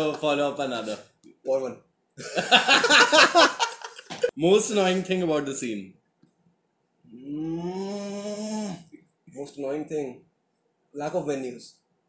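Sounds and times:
man humming while thinking: 0:07.1 - 0:08.8.

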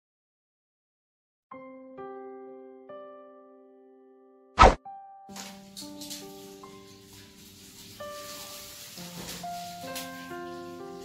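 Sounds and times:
piano-like music: 0:01.5 - 0:11.0
loud pop sound effect: 0:04.6 - 0:04.8.

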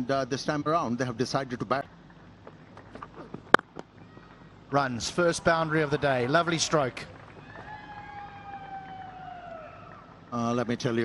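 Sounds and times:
faint background noise: 0:00.0 - 0:11.0.

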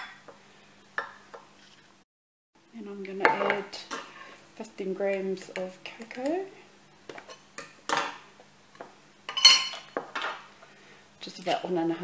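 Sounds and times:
spoon clinking on dishes: 0:09.3 - 0:10.3.

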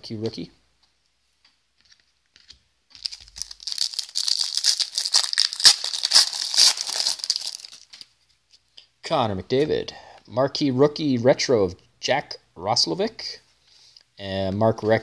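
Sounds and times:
plastic wrapper crinkling and tearing: 0:01.9 - 0:08.2.

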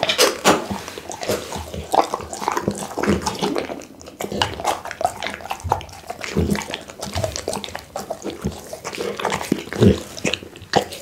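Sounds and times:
dog chewing wetly: 0:00.0 - 0:11.0.

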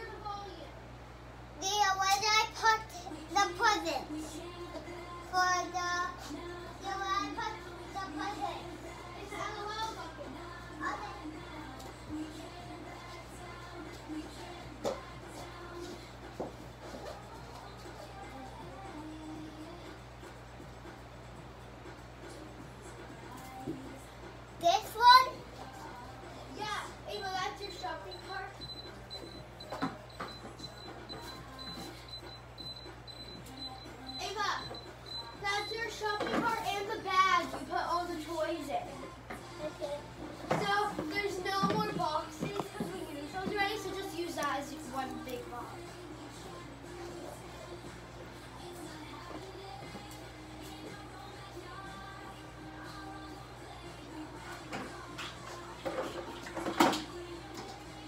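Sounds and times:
child singing: 0:01.6 - 0:20.0, 0:23.0 - 0:28.8, 0:33.6 - 0:58.0
children's voices: 0:06.8 - 0:11.4, 0:35.4 - 0:45.7.

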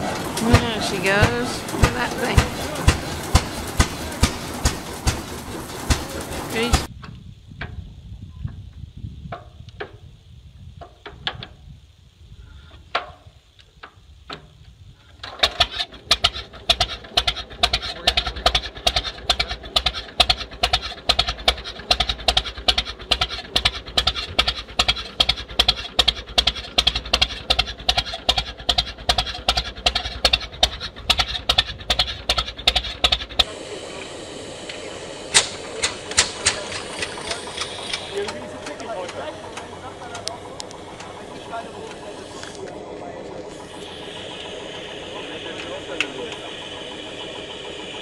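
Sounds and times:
sharp cracks: 0:00.0 - 0:06.9, 0:15.3 - 0:33.5, 0:35.3 - 0:42.6
tractor engine starting on hand crank: 0:00.0 - 0:06.9, 0:15.1 - 0:33.5, 0:35.3 - 0:48.0
old engine running: 0:00.0 - 0:07.0, 0:14.4 - 0:48.0.

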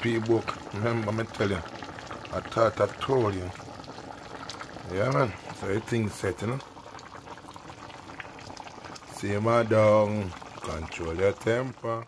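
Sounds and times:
stew bubbling in a pot: 0:00.0 - 0:12.0.

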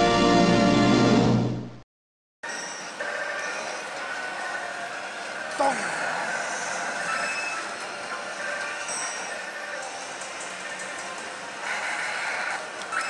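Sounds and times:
slot machine noise: 0:02.4 - 0:13.0.

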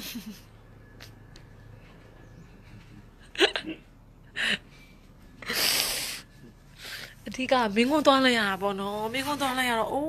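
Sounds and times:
woman laughing: 0:00.0 - 0:00.6, 0:03.2 - 0:04.7.

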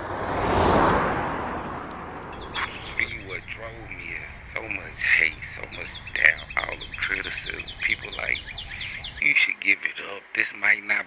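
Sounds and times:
birds chirping: 0:01.6 - 0:11.0.

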